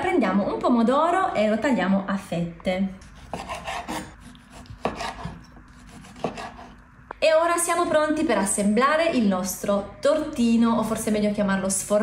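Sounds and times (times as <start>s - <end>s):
knife sawing through tomato: 3.0s - 6.8s.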